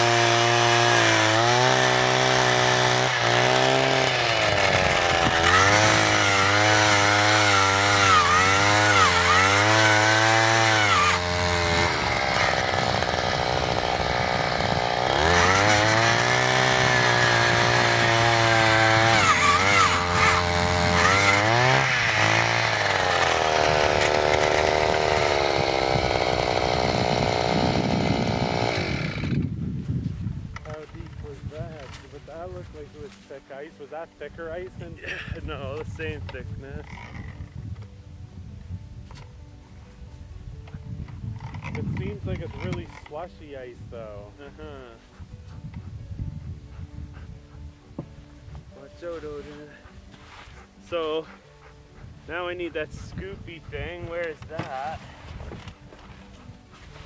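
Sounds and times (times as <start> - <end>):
ice auger engine drilling: 0.0 - 29.5.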